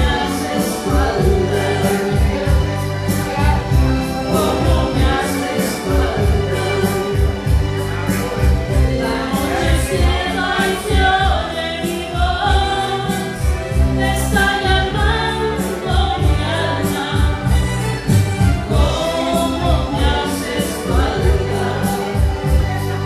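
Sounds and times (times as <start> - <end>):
woman singing into a microphone: 0.0 - 7.7, 9.0 - 22.7
karaoke backing track with bass beat: 0.0 - 23.0.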